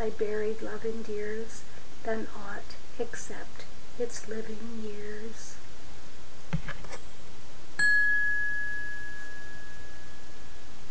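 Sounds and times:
struck chime ringing: 7.8 - 10.5.

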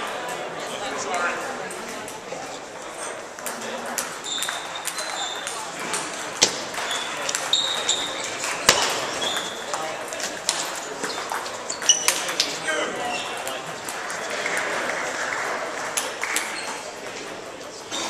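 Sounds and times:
voices in a large hall: 0.0 - 18.0
table tennis balls clicking: 1.4 - 12.6, 13.2 - 18.0.

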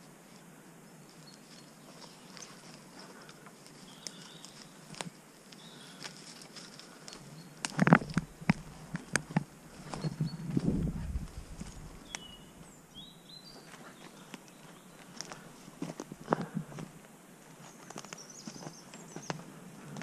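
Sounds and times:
footsteps through long grass: 0.0 - 12.8, 13.4 - 20.0
leaves and stems brushing: 0.0 - 12.8
birds chirping: 0.0 - 20.0.

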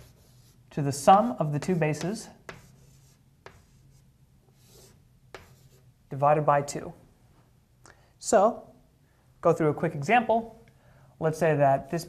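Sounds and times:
chalk scratching on blackboard: 0.0 - 0.7, 1.6 - 5.9
chalk tapping board: 1.6 - 4.0, 4.6 - 5.8.

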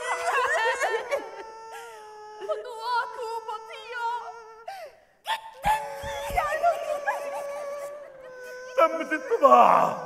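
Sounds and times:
person wailing: 0.0 - 4.7, 5.3 - 10.0.

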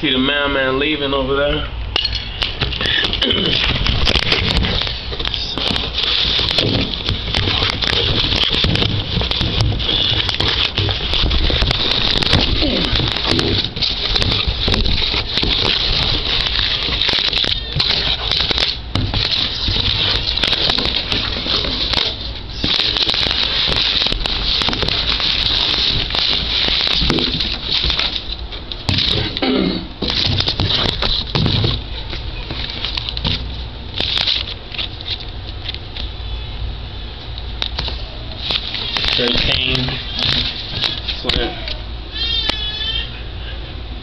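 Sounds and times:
cardboard and paper rustling: 2.5 - 29.4, 30.0 - 35.9, 37.6 - 42.5.

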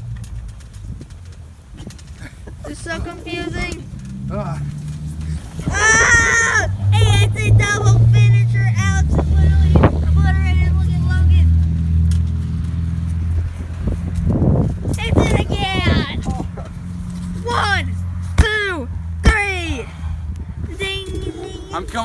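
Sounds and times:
boys shouting and yelling: 2.6 - 3.9, 5.4 - 11.5, 14.9 - 16.8, 17.4 - 20.0, 20.7 - 22.0.

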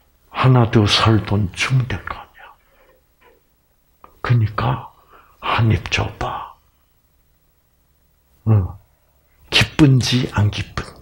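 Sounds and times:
man speaking softly: 0.3 - 2.6, 4.0 - 6.7, 8.4 - 8.9, 9.5 - 11.0.

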